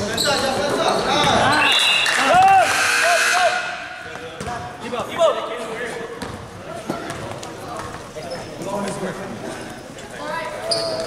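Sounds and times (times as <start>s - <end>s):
shoe squeak: 0.0s - 2.4s, 8.2s - 8.6s, 10.6s - 11.0s
voices in a hall: 0.0s - 11.0s.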